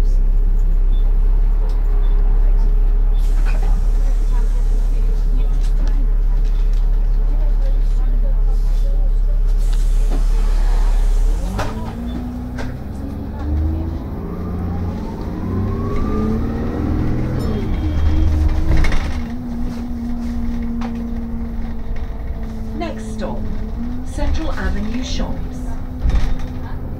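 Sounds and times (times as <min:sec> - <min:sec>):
bus engine drone: 0:00.0 - 0:26.9.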